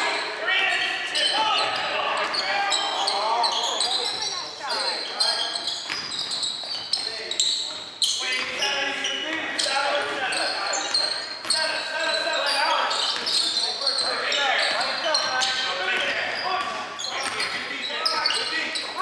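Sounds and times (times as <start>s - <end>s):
players calling out: 0.0s - 19.0s
sneakers squeaking: 0.0s - 19.0s.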